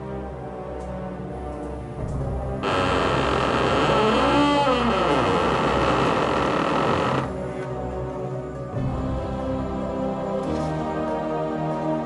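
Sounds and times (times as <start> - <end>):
eerie background music: 0.0 - 12.0.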